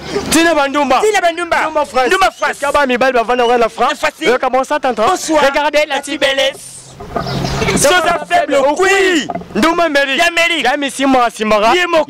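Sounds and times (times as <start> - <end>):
man's voice: 0.2 - 6.9, 7.8 - 12.0
vehicle engine running: 4.3 - 9.8.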